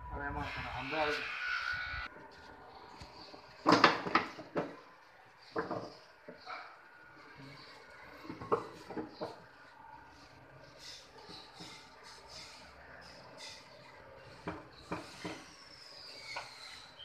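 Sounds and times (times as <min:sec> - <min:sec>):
wooden panels knocking and clattering: 0:03.6 - 0:04.8, 0:08.2 - 0:09.4.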